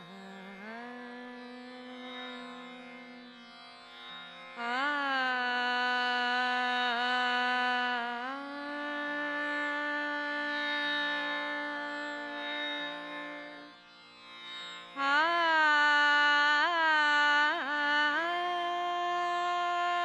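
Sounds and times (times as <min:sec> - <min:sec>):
woman singing long notes: 0:00.0 - 0:02.1, 0:04.6 - 0:12.5, 0:15.0 - 0:20.0
tanpura drone: 0:00.0 - 0:20.0.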